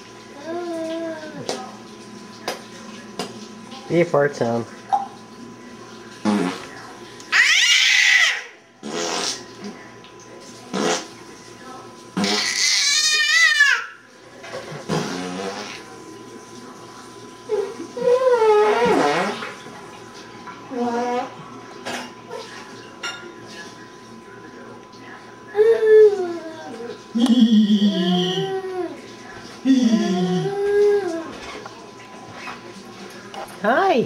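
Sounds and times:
infant squealing: 7.4s - 8.5s.

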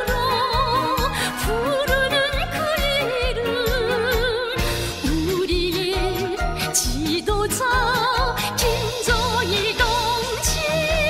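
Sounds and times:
electronic pop music: 0.0s - 11.0s
woman singing with vibrato: 0.0s - 11.0s.

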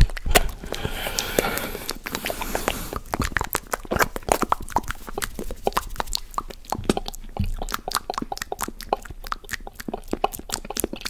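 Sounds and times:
wet mouth clicks and smacks: 0.0s - 11.0s.

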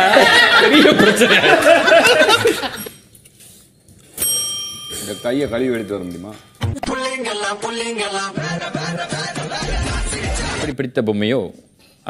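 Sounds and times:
bright bell-like ding: 4.2s - 6.8s.

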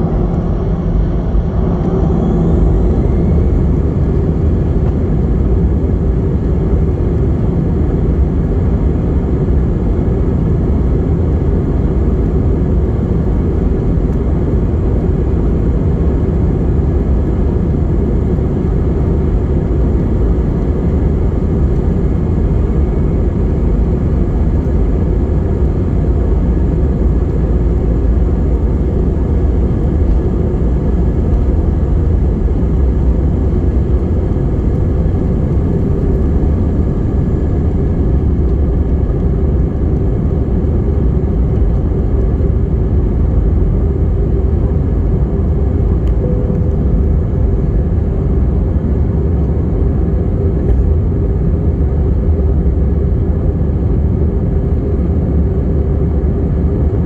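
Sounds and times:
jet engines and runway rumble: 0.0s - 57.0s.

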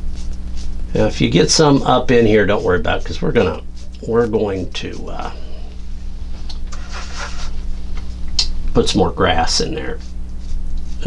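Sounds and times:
low electrical hum: 0.0s - 11.0s
toothbrush bristles scratching canvas: 0.1s - 7.6s, 9.3s - 11.0s.

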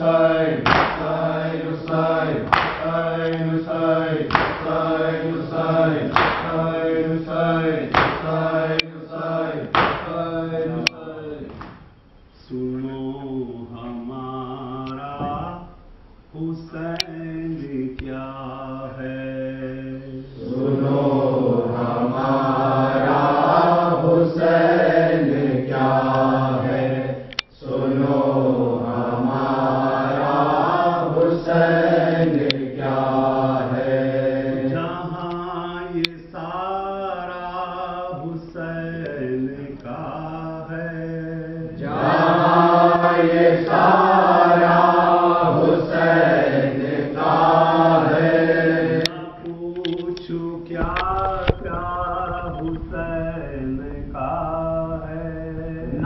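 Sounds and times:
men chanting a lament: 0.0s - 11.6s, 16.4s - 56.0s.

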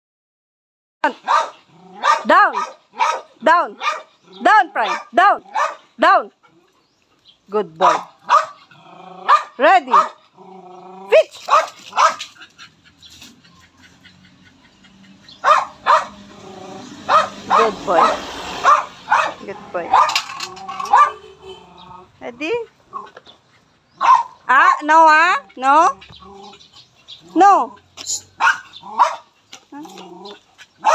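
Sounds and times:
dog barking: 1.0s - 4.1s, 4.8s - 5.9s, 7.8s - 10.2s, 11.4s - 12.4s, 15.3s - 21.7s, 24.0s - 25.0s, 28.4s - 29.3s
dog growling low: 8.6s - 9.3s, 10.3s - 11.2s, 16.2s - 17.1s, 21.6s - 22.2s, 25.5s - 27.9s, 29.7s - 30.6s.

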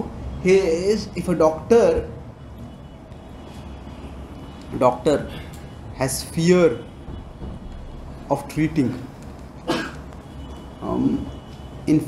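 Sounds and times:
low rumble of room noise: 0.0s - 11.9s.

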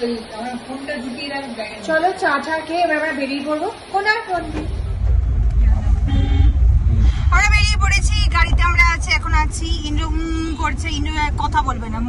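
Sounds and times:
car cabin rumble: 4.4s - 12.0s
faint car horn toot: 6.0s - 6.6s.

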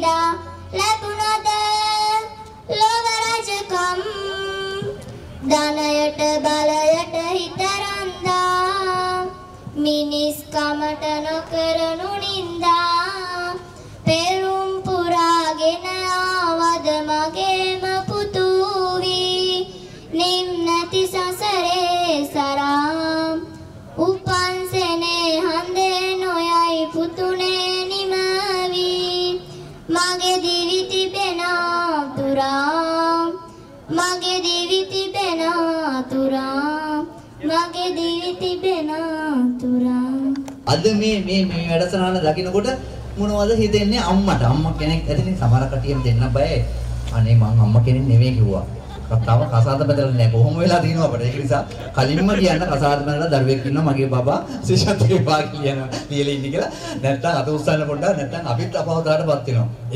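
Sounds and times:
girl singing unaccompanied: 0.0s - 40.7s.

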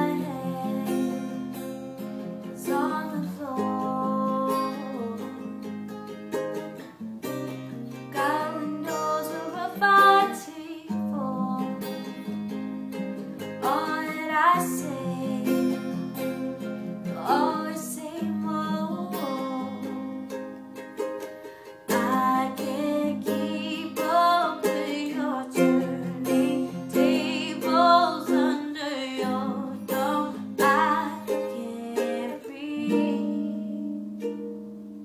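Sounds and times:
woman singing: 0.0s - 5.6s, 8.1s - 12.2s, 13.6s - 20.5s, 21.9s - 34.3s
guitar and ukulele strumming: 0.0s - 35.0s.

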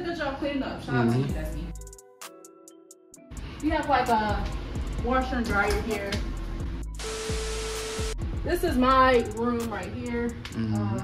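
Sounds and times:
background music: 0.8s - 11.0s
tv static hiss: 7.0s - 8.2s
steady beep: 7.0s - 8.3s.

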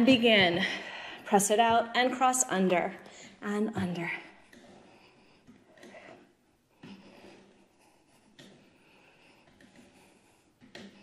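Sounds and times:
person breathing hard: 0.6s - 1.3s.

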